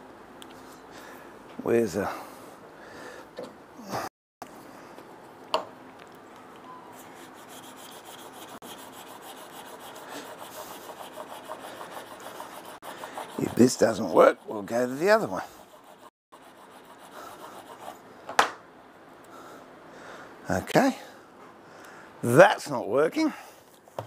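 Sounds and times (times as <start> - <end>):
iron rubbing over wood: 7.1 - 18.0.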